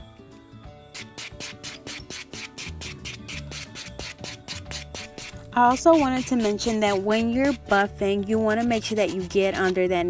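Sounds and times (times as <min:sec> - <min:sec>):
background music: 0:00.0 - 0:10.0
buffer block rasping on nails: 0:00.9 - 0:07.8.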